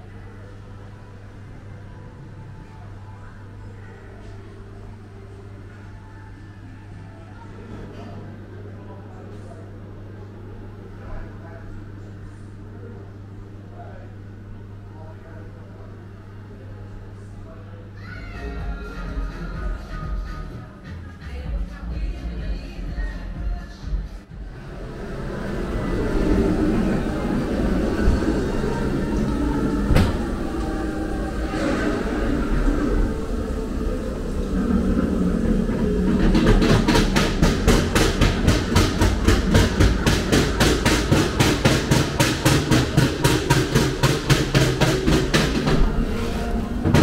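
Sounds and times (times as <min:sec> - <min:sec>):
ride car rumbling on track: 0:24.3 - 0:47.0.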